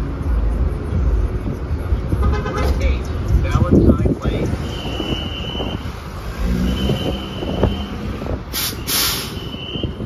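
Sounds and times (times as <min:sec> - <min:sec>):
bus idling rumble: 0:07.4 - 0:10.0.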